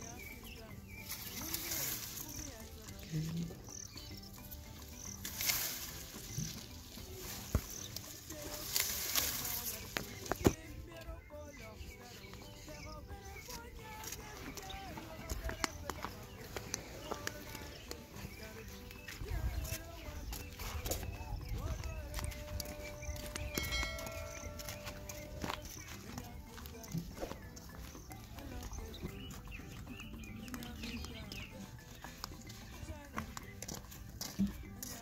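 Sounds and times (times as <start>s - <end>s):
flip-flop footsteps on dirt: 0.0s - 35.0s
held tone: 23.5s - 25.8s.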